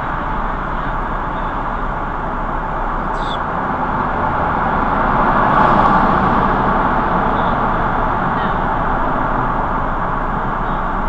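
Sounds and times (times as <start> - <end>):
car road and tyre noise: 0.0 - 11.0.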